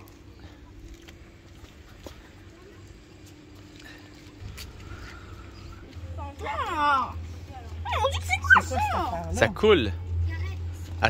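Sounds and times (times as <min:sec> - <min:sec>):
motor traffic rumble: 0:00.0 - 0:11.0.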